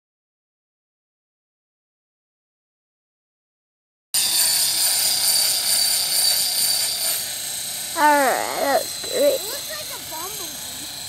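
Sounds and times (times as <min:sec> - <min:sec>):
toy helicopter rotor whine: 0:04.2 - 0:11.0
person speaking: 0:08.0 - 0:10.0.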